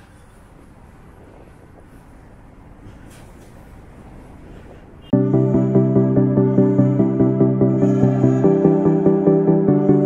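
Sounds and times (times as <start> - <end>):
low rumble of city traffic: 0.0 - 5.2.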